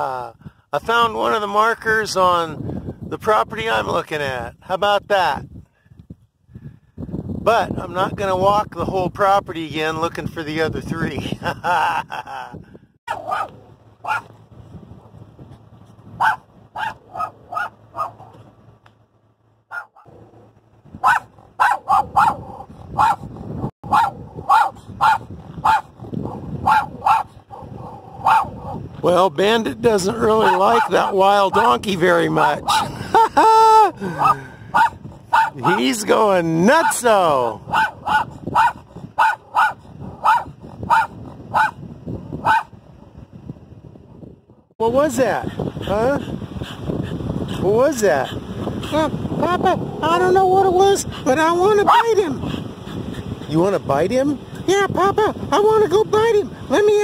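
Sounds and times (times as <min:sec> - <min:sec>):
dog barking: 0:13.1 - 0:14.3, 0:16.2 - 0:18.4, 0:19.7 - 0:20.1, 0:21.0 - 0:28.8, 0:30.4 - 0:31.7, 0:32.6 - 0:32.9, 0:34.1 - 0:35.9, 0:37.7 - 0:41.8, 0:42.4 - 0:42.8, 0:51.8 - 0:52.1.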